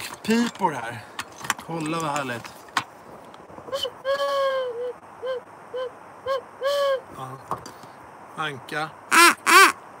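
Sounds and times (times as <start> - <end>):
duck call notes: 9.1 - 9.8.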